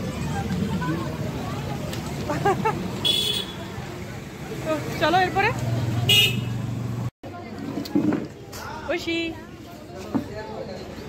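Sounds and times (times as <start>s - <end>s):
road traffic hum: 0.0s - 11.0s
vehicle horn toot: 3.0s - 3.6s, 6.1s - 6.6s.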